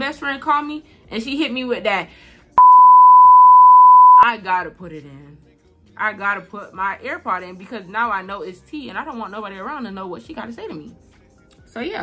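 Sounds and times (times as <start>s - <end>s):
censor bleep: 2.6s - 4.2s
speech: 11.7s - 12.0s.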